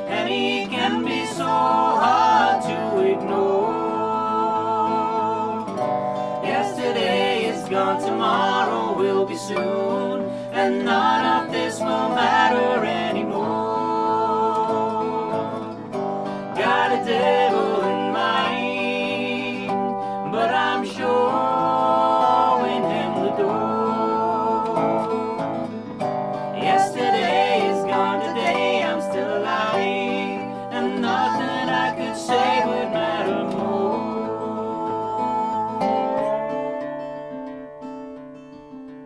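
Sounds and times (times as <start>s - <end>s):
woman singing: 0.0s - 15.9s, 16.5s - 25.6s, 26.5s - 36.8s
slide resonator guitar: 0.0s - 39.0s
strummed acoustic guitar: 0.0s - 39.0s.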